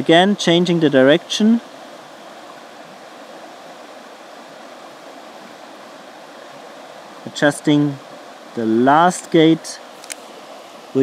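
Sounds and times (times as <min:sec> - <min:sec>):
river rushing: 0:00.0 - 0:11.0.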